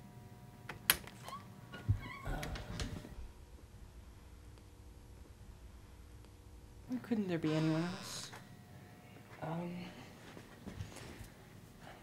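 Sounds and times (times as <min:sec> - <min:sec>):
door hinge squeak: 0:07.4 - 0:08.3.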